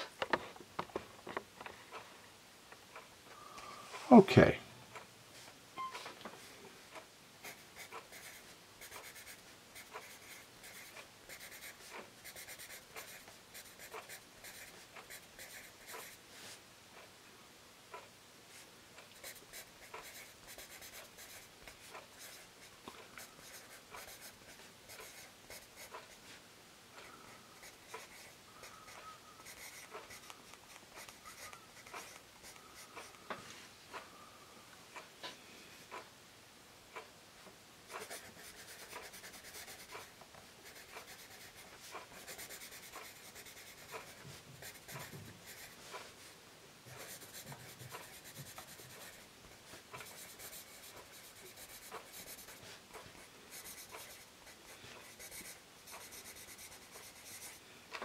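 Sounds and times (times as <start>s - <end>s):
pencil writing on paper: 7.4s - 16.2s, 19.2s - 26.2s, 27.0s - 33.2s, 37.9s - 46.0s, 46.9s - 49.3s, 49.9s - 57.6s.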